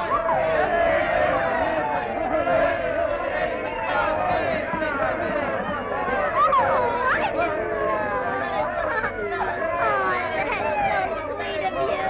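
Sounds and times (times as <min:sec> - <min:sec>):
cartoon voices chattering: 0:00.0 - 0:12.0.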